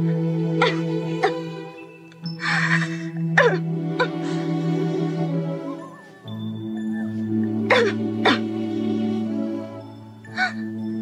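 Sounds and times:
soft background music chord: 0.0s - 11.0s
girl coughing weakly: 0.6s - 1.4s, 2.5s - 4.2s, 7.7s - 8.5s.

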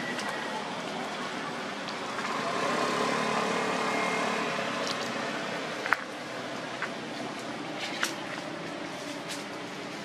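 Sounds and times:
outdoor background noise: 0.0s - 10.0s
passing vehicle engine hum: 0.0s - 10.0s.

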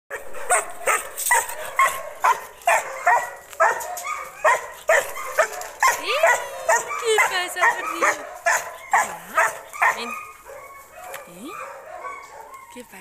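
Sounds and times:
dog barking: 0.1s - 12.9s.

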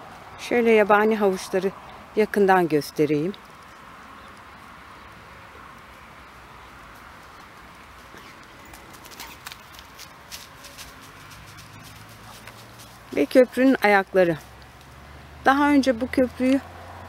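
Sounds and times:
creek ambience: 0.0s - 17.0s
birds calling: 3.4s - 10.2s
footsteps on grass and soil: 6.9s - 13.7s.

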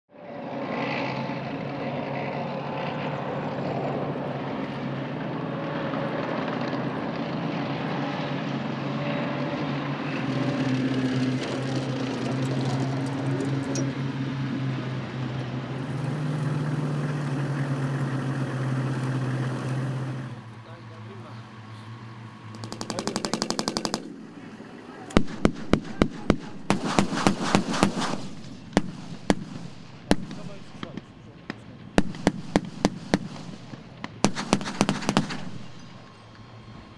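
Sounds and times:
diesel engines droning: 0.1s - 36.9s.

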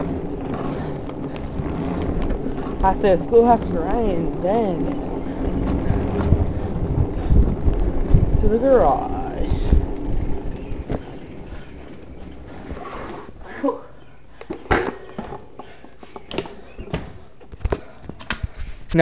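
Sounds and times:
bicycle clicks and knocks: 0.0s - 13.1s
wind rumble on microphone: 0.0s - 13.5s.

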